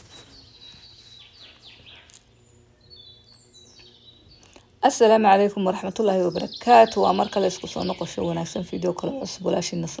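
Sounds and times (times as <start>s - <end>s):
faint birds chirping: 0.0s - 10.0s
low steady hum: 0.0s - 10.0s.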